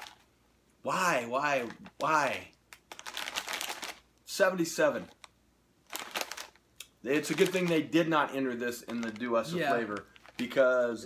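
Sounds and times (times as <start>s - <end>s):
plastic chip bag rustling: 0.0s - 0.3s, 2.8s - 4.1s, 5.9s - 6.6s, 7.2s - 8.1s, 8.7s - 10.9s.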